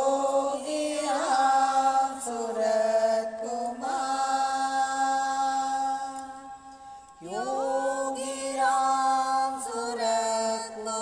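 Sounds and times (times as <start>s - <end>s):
voice chanting in long notes: 0.0s - 11.0s.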